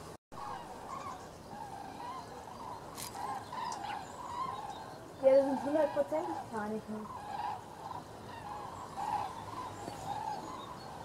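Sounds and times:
cranes trumpeting calls: 0.4s - 11.0s.

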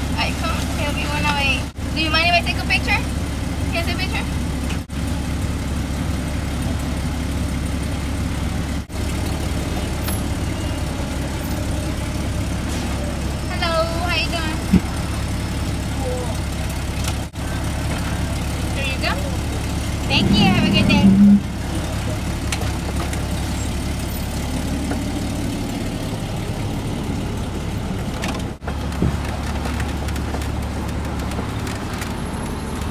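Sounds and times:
car engine idling: 0.0s - 32.9s.

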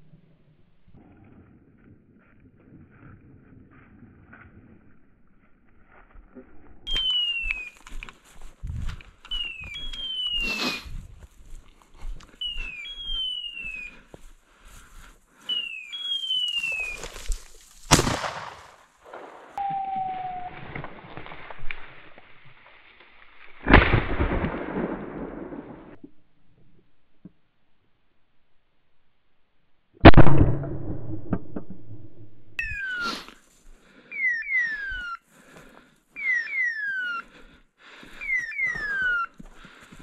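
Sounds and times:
high call falling in pitch: 6.9s - 8.0s, 9.3s - 10.9s, 12.4s - 13.9s, 15.5s - 17.3s, 19.6s - 20.6s, 32.6s - 33.3s, 34.1s - 35.2s, 36.2s - 37.3s, 38.2s - 39.4s
shotgun shots: 17.9s - 19.6s, 30.0s - 32.1s.

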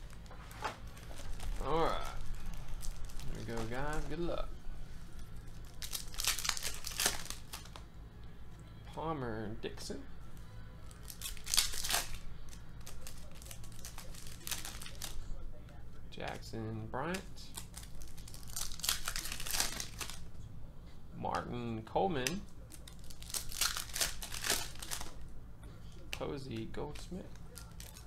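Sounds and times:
foil wrapper crinkling: 0.0s - 4.4s, 5.2s - 7.8s, 10.9s - 15.3s, 17.1s - 20.2s, 22.6s - 25.2s, 26.6s - 28.0s.

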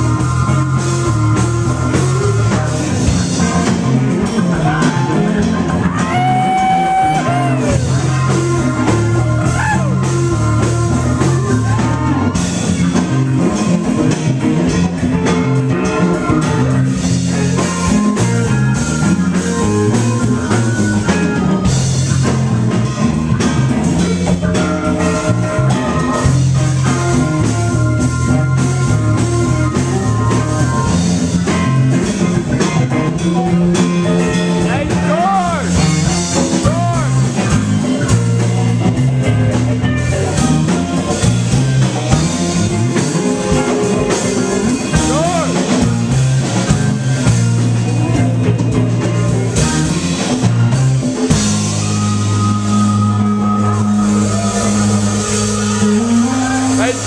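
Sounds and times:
funk band playing: 0.0s - 57.0s
lead line with bending notes: 0.0s - 57.0s.

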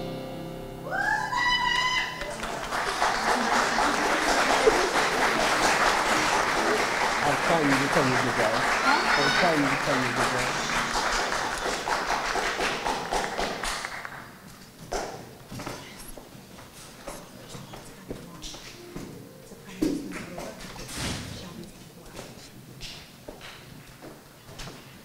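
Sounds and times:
shouts and whoops: 0.9s - 2.3s, 8.8s - 9.5s
audience applauding: 1.5s - 14.4s.

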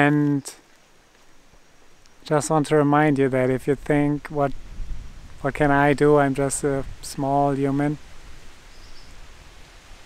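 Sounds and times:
wind blowing on microphone: 2.3s - 10.0s.

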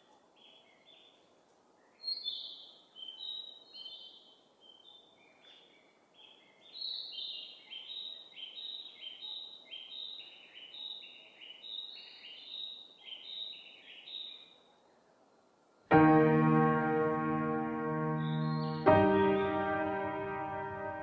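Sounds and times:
small birds chirping: 0.0s - 15.8s, 18.1s - 19.6s.

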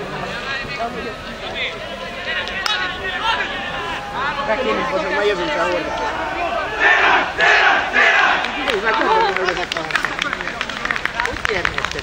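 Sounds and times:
team shouting in unison: 2.2s - 8.7s.

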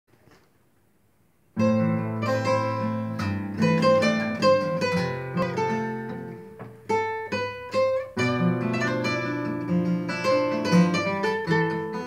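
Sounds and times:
fingerpicked acoustic guitars: 1.5s - 12.0s.

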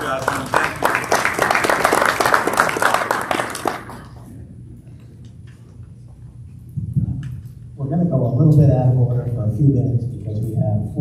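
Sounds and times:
audience applause: 0.0s - 4.3s
low steady hall hum: 0.0s - 11.0s.

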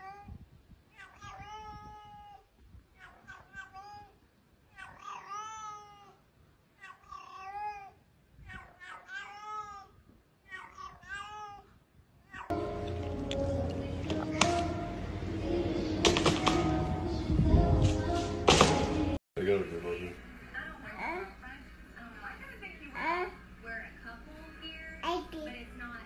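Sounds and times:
loud music: 12.5s - 19.2s.

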